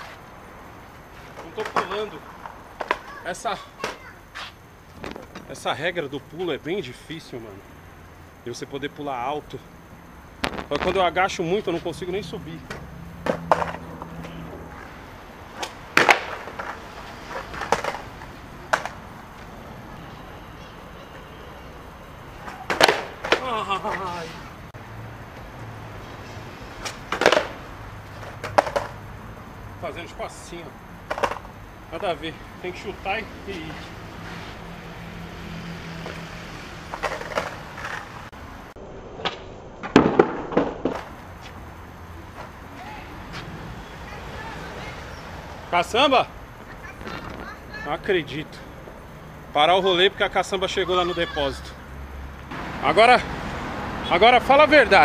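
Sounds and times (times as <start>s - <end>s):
skateboard clattering on concrete: 1.3s - 4.1s, 12.6s - 14.9s, 15.5s - 19.5s, 22.4s - 24.2s, 26.8s - 29.0s, 31.0s - 31.5s, 36.9s - 38.3s, 39.8s - 41.2s
light skateboard knocks: 1.6s - 3.2s, 15.6s - 19.0s, 22.4s - 24.0s, 26.8s - 27.6s, 31.1s - 31.5s.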